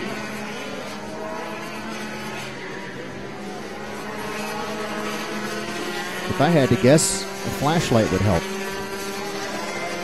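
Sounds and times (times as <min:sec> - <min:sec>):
kart engines racing: 0:00.0 - 0:10.0.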